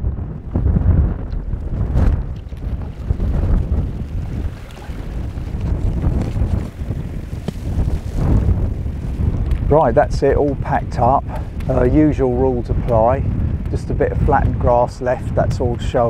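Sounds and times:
gusty wind buffeting microphone: 0.0 - 16.0.

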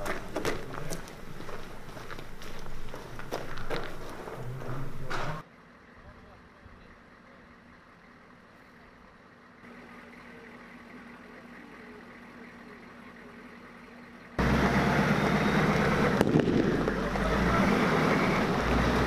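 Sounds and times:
military vehicle driving close by: 0.0 - 19.0.

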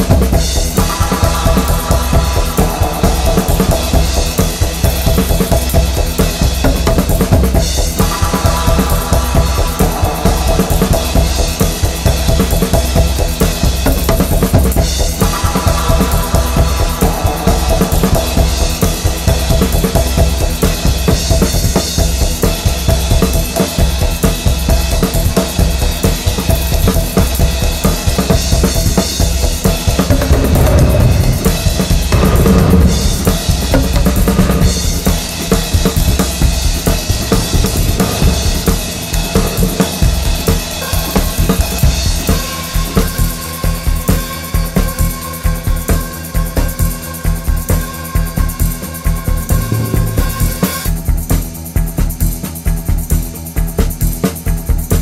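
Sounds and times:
electronic dance music: 0.0 - 51.0.

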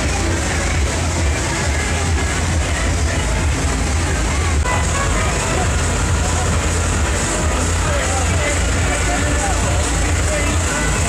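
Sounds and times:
crowd voices: 0.0 - 11.0
music: 0.0 - 11.0
tractor diesel engine running: 0.0 - 11.0.

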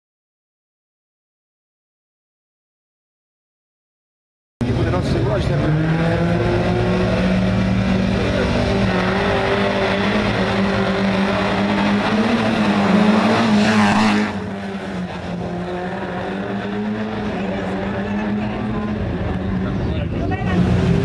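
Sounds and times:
rally car engine revving: 4.6 - 21.0.

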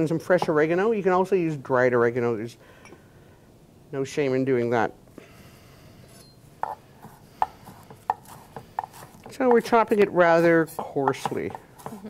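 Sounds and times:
knife chopping on wooden board: 6.6 - 10.0, 10.7 - 12.0.

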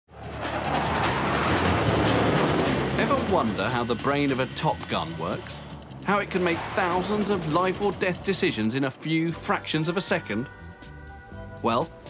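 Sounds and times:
fighter jet flying past: 0.1 - 5.2, 6.1 - 8.8.

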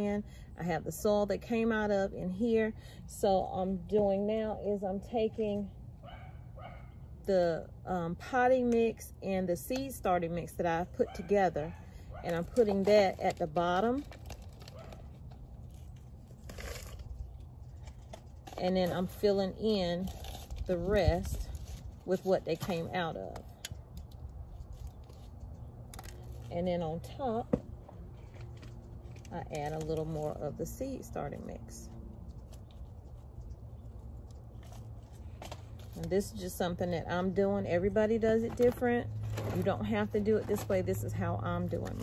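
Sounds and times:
low steady rumble: 0.0 - 42.0.

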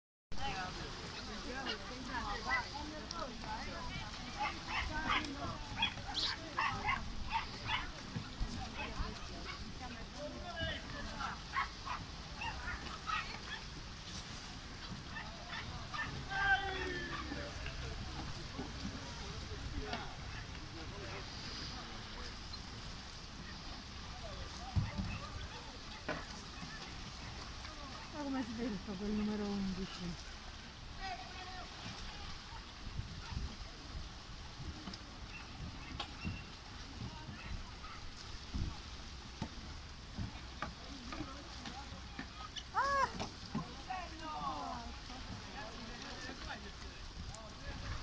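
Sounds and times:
kayak paddles splashing water: 0.3 - 48.0
distant voices shouting: 15.0 - 17.6.

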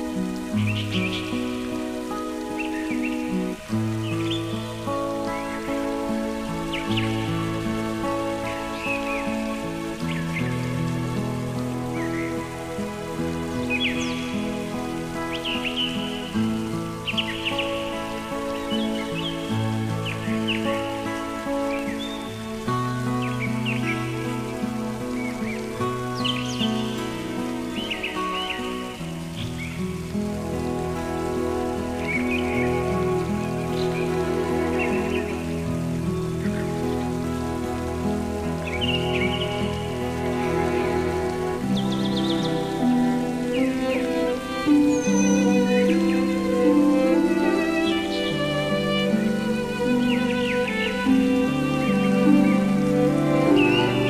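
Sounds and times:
birds chirping: 0.0 - 54.0
gentle instrumental music: 0.0 - 54.0
rain patter: 0.0 - 54.0.

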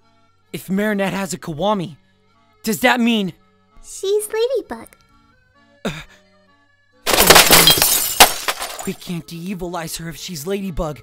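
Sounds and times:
glass shattering crash: 7.1 - 9.1.

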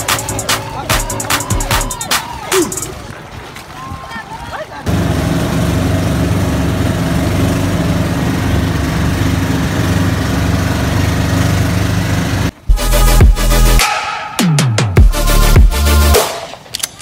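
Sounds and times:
water rushing along hull: 0.3 - 12.0
boat engine running: 4.8 - 13.4.

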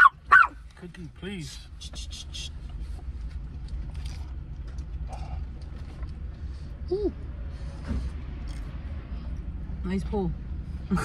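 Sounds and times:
car idling rumble: 0.0 - 10.0.

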